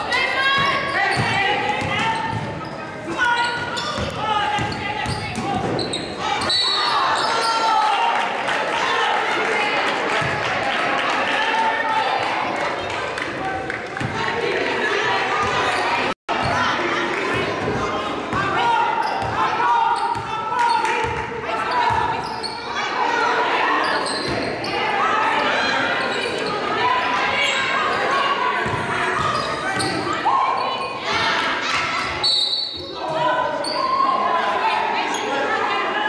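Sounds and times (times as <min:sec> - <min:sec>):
people calling and shouting: 0:00.0 - 0:36.0.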